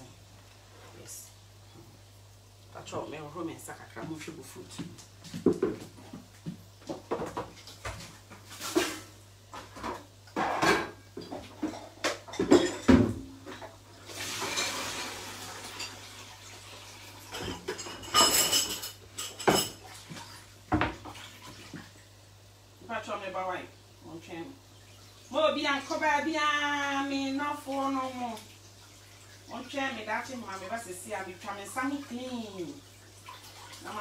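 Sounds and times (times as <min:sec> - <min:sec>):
utensils clinking on pots and pans: 0:09.7 - 0:13.7, 0:17.3 - 0:19.8.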